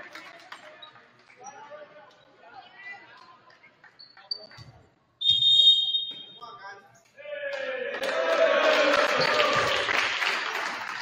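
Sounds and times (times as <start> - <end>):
faint voices in a gym: 0.0 - 9.9
referee's whistle blast: 5.2 - 6.4.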